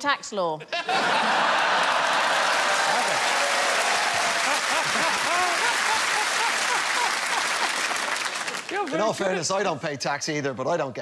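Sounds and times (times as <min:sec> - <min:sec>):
audience laughing: 0:00.7 - 0:08.3
audience applauding: 0:01.0 - 0:09.4.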